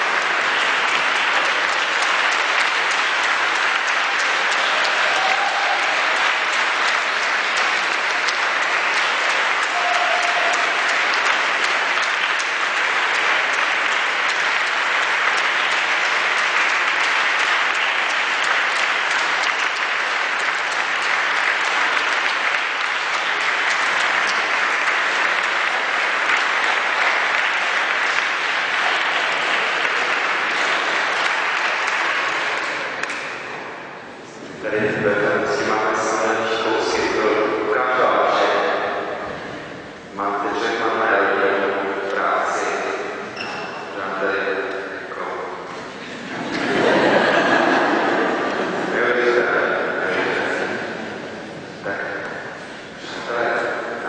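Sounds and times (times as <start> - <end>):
audience applauding: 0.0 - 54.0.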